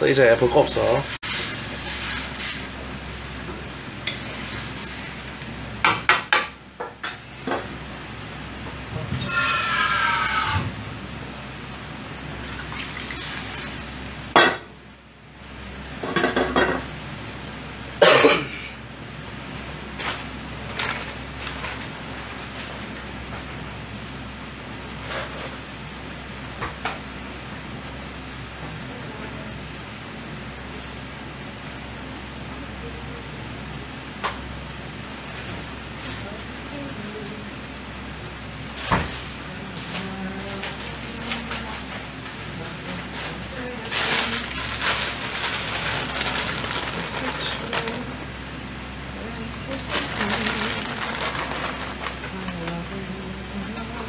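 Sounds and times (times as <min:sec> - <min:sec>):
brief rising squeal: 0:09.2 - 0:10.8.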